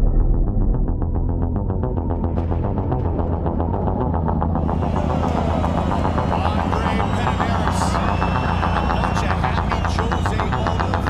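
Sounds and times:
music with deep bass and beat: 0:00.0 - 0:11.0.

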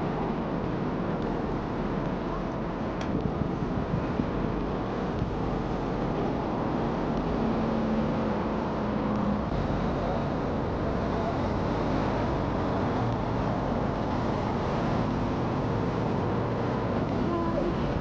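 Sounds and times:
road traffic rumble: 0:00.0 - 0:18.0
wind buffeting microphone: 0:00.0 - 0:18.0.

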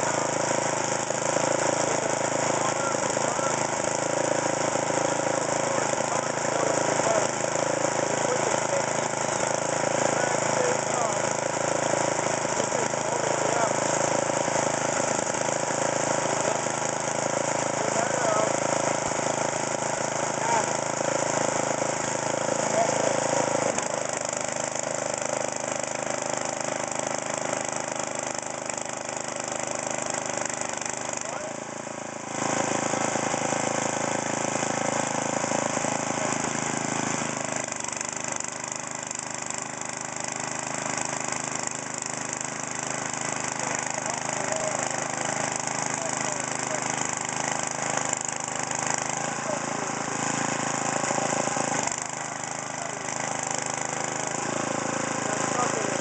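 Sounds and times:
tiller engine running: 0:00.0 - 0:56.0
tines digging through soil: 0:42.4 - 0:56.0.

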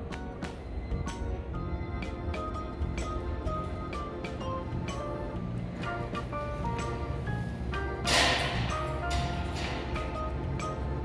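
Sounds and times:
light plucked music: 0:00.0 - 0:11.0.

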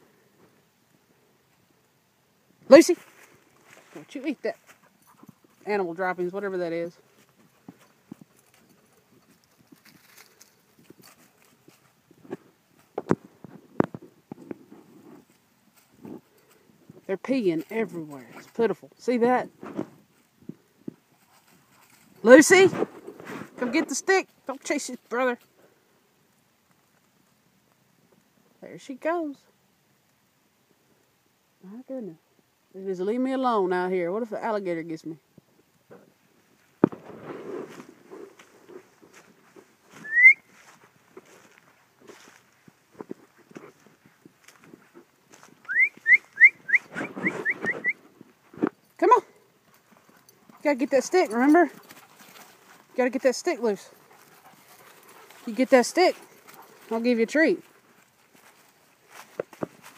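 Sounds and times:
person whistling: 0:40.0 - 0:40.5, 0:45.7 - 0:48.0.

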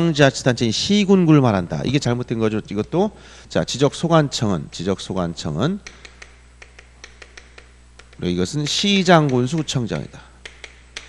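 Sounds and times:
low steady hum: 0:00.0 - 0:11.0
chalk tapping on chalkboard: 0:05.8 - 0:11.0.

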